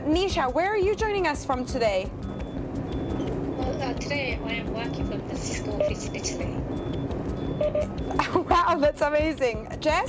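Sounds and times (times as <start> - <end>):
train rumbling: 1.0 - 9.4.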